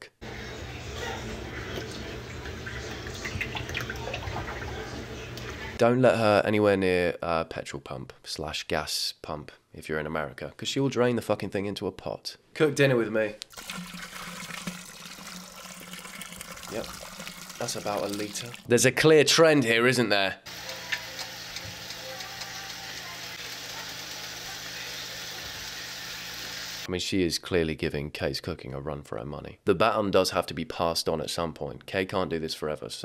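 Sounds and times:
oil pouring into metal pot: 13.5 - 18.7.

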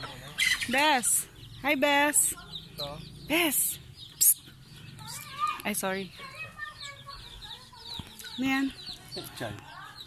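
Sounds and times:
chickens clucking: 0.0 - 10.0.

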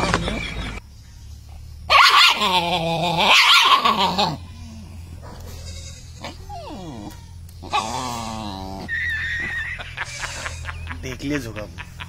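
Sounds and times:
dog whining: 1.9 - 10.6
dog whimpering: 2.3 - 10.7.

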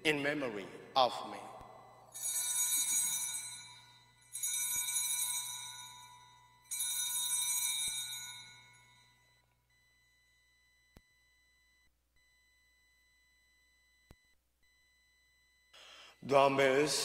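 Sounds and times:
altar bells ringing: 2.1 - 9.4.

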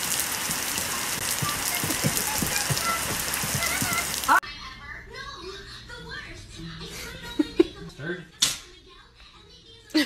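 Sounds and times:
rain on wet pavement: 0.0 - 4.4.

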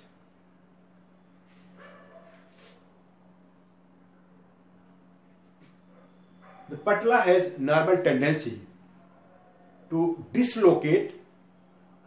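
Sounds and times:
faint whine-like tone: 0.0 - 12.0
steady low hum: 0.0 - 12.0.

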